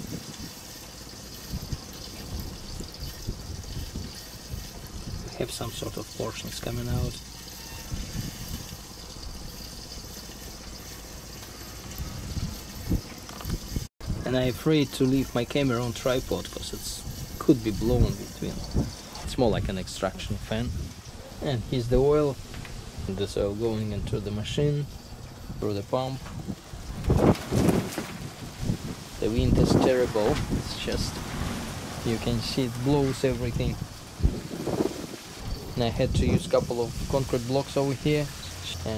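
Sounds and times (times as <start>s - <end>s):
strong wind buffeting microphone: 0.0s - 0.6s, 1.4s - 7.1s, 7.9s - 9.9s, 11.9s - 14.6s, 15.3s - 38.3s.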